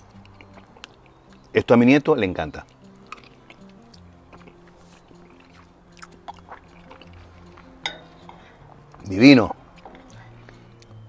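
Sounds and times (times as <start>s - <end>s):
person chewing: 0.0s - 1.5s, 2.7s - 9.0s
soft background music: 0.0s - 11.0s.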